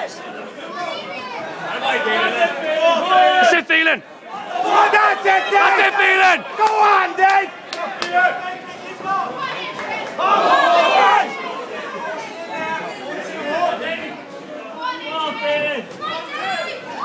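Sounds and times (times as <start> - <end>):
crowd chatter: 0.0 - 17.0
crowd shouting encouragement: 0.0 - 17.0.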